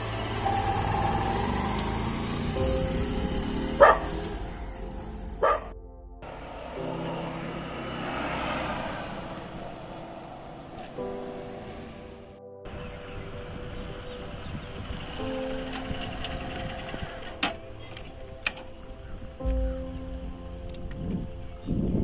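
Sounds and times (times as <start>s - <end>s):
motorcycle engine running: 0.0s - 5.7s
background music: 0.0s - 22.0s
dog barking: 3.8s - 4.3s, 5.4s - 5.7s.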